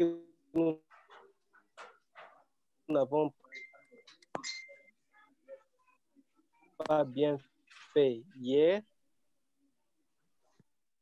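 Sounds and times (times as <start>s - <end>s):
man speaking: 0.0s - 0.8s, 2.9s - 3.4s, 6.8s - 8.9s
faint background sounds: 0.0s - 10.7s.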